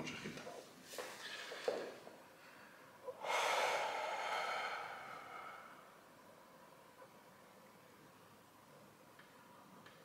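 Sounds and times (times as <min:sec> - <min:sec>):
man breathing out hard: 0:02.5 - 0:06.0.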